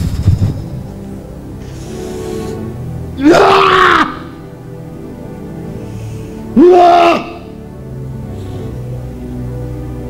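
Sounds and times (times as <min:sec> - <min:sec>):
soft background music: 0:00.0 - 0:10.0
man wailing loudly: 0:03.2 - 0:04.4, 0:06.6 - 0:07.5.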